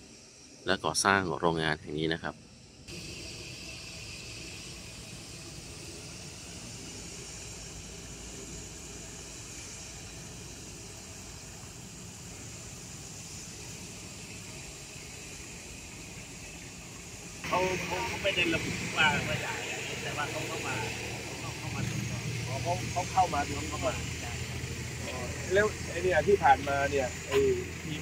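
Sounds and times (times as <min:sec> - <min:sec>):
hiss: 0:00.0 - 0:28.0
low rumble: 0:17.0 - 0:28.0.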